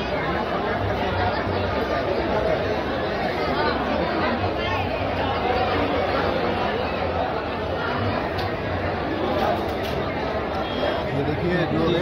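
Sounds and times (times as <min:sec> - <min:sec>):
people chattering indistinctly: 0:00.0 - 0:12.0.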